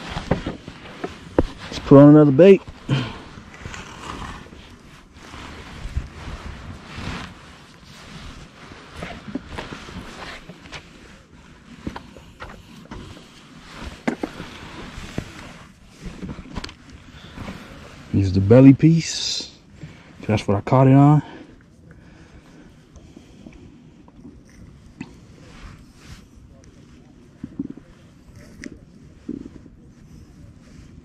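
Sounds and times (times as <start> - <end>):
clothing rustling: 0.0 - 18.6.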